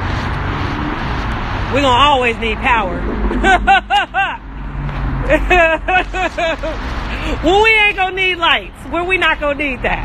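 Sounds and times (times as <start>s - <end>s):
low rumble: 0.0s - 7.5s
woman laughing: 3.3s - 4.4s, 5.2s - 6.9s.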